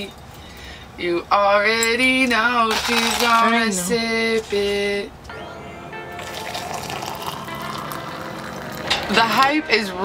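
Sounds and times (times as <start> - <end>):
music: 2.8 - 10.0
hot water pouring: 6.2 - 9.5.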